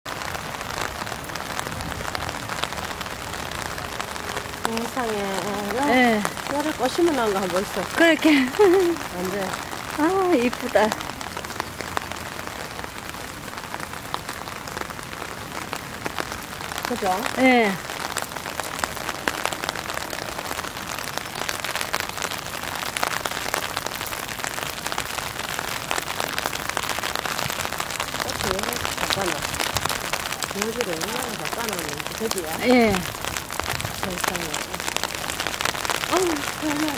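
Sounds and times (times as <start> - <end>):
raindrops pattering close by: 0.0 - 36.9
steady rain falling: 0.0 - 36.9.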